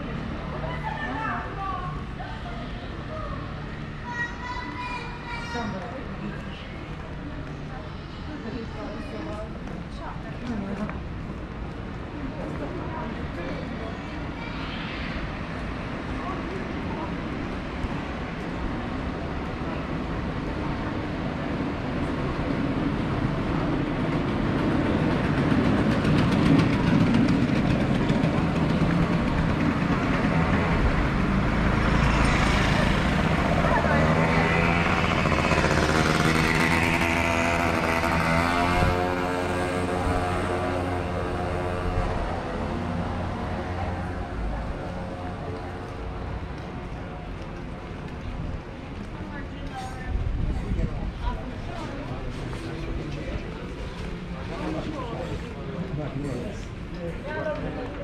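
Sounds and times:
voices of passers-by: 0.0s - 58.0s
motor scooter passing: 14.6s - 49.5s.

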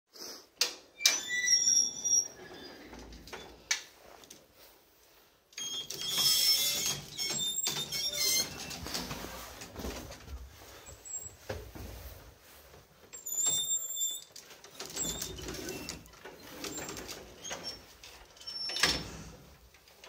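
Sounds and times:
metal lift gates clanking: 5.6s - 9.2s.

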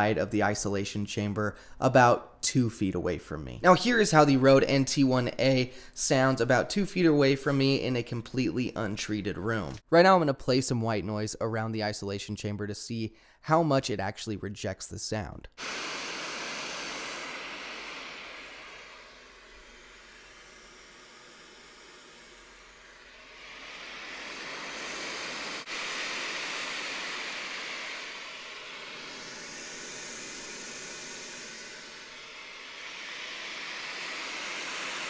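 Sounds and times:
white noise hiss from phone speaker: 0.0s - 2.6s, 15.6s - 35.0s.

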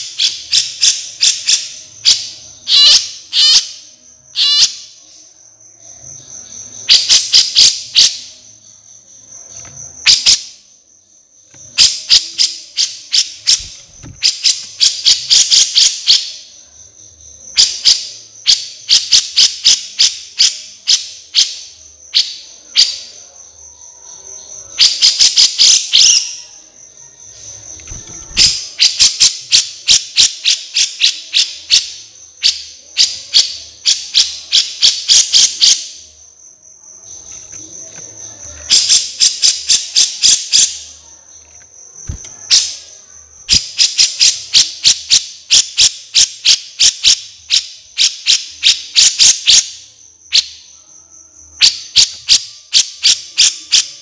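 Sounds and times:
cricket trill: 0.0s - 54.0s
rapid insect ticking: 0.0s - 54.0s.

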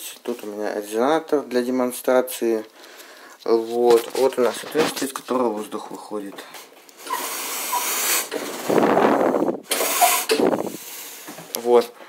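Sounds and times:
air hissing from bellows: 7.0s - 11.5s.

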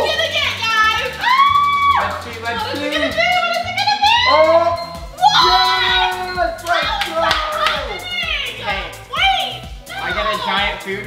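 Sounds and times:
upbeat background music: 0.0s - 11.0s
people shrieking excitedly: 0.7s - 10.8s.

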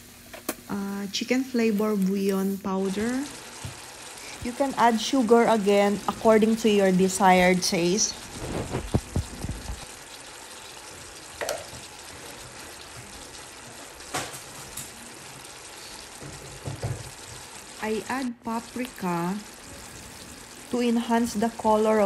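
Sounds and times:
sauce simmering in a pan: 2.0s - 22.0s.

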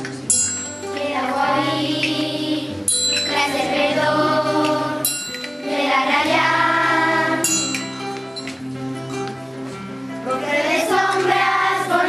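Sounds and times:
bright ringing percussive strikes: 0.3s - 1.2s, 2.9s - 3.8s, 4.4s - 6.4s, 7.3s - 9.3s
children's choir singing: 0.8s - 8.2s, 10.2s - 12.0s.

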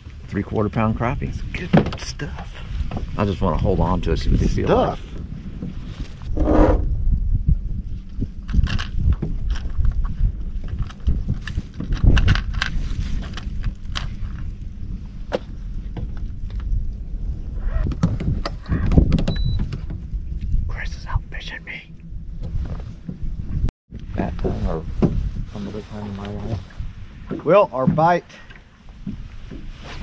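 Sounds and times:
steady low rumble: 0.0s - 29.9s
fishing gear knocks and clicks: 10.6s - 14.5s.

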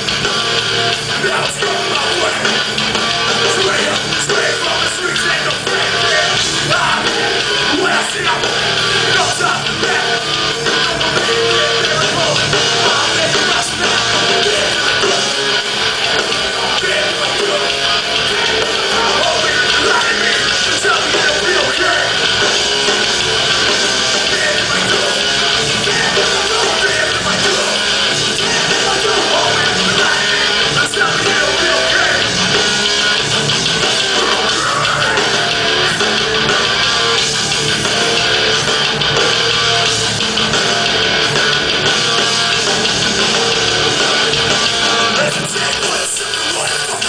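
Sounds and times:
bass guitar: 0.0s - 47.0s
distorted electric guitar: 0.0s - 47.0s
drum kit: 0.0s - 47.0s
hardcore band playing live: 0.0s - 47.0s.

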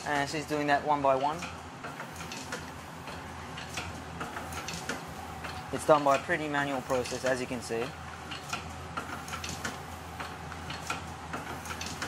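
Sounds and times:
faint mechanism clicks: 0.0s - 12.0s
printing machine humming: 0.0s - 12.0s.

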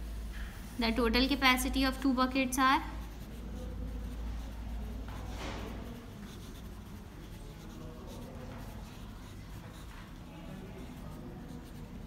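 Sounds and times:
pen scratching on paper: 2.9s - 12.0s.

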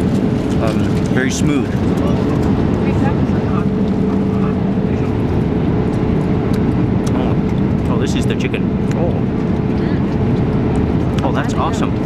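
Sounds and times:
jet airliner cabin roar: 0.0s - 12.0s.

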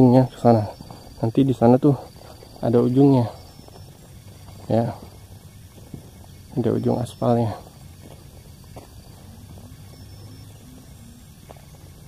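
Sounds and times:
faint wavering tone: 0.0s - 12.0s
low steady hum: 0.0s - 12.0s.

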